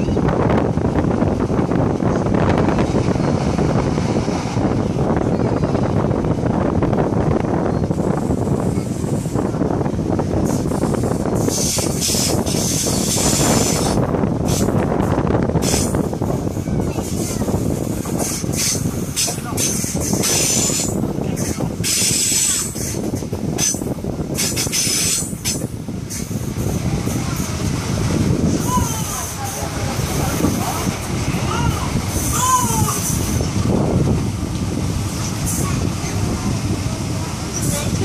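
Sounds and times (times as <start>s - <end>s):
train wheels rumbling on rail: 0.0s - 38.0s
wind gusts over microphone: 0.0s - 38.0s.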